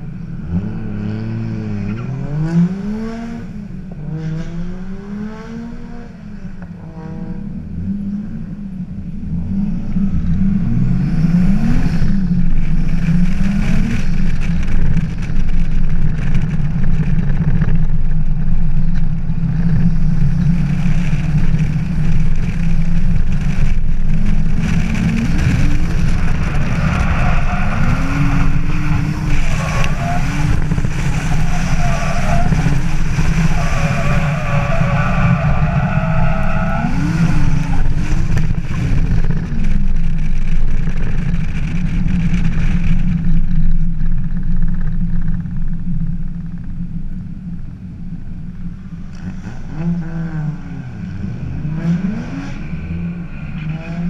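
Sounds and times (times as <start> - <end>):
car engine revving: 9.2 - 43.2, 49.1 - 54.0.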